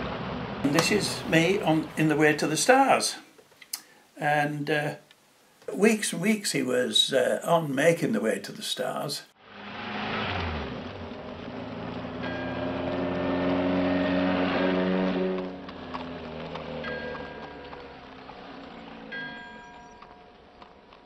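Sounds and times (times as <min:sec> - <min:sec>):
old film soundtrack hiss: 0:00.7 - 0:09.2
held chords with bell-like tones: 0:19.1 - 0:20.4.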